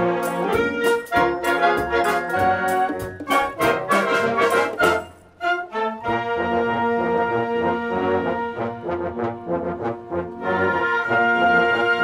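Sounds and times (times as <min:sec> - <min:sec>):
wind band playing: 0:00.0 - 0:12.0.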